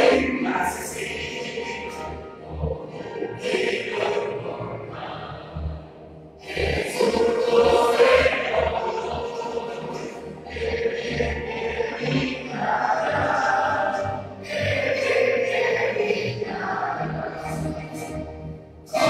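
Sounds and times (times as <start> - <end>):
anthem over loudspeakers: 0.0 - 19.0
choir singing with instruments: 0.0 - 19.0.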